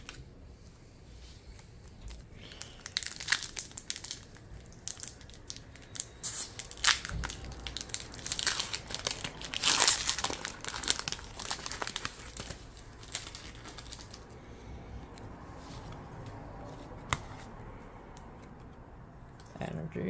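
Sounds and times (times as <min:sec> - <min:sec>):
foil wrapper crinkling: 0:01.5 - 0:14.3.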